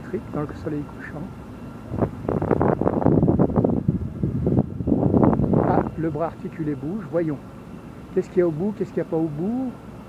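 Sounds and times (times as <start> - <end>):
wind buffeting microphone: 1.1 - 7.1.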